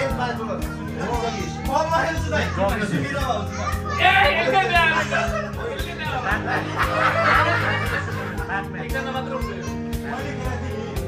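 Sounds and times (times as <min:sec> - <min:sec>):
chatter of adults and children: 0:00.0 - 0:11.0.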